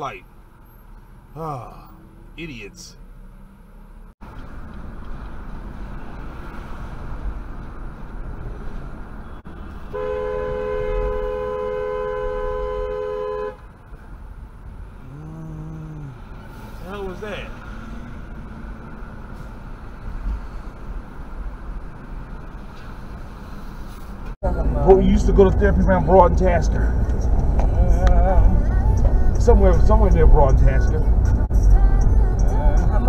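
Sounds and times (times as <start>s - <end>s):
road noise inside moving car: 0.0s - 33.0s
car horn blast: 9.7s - 13.7s.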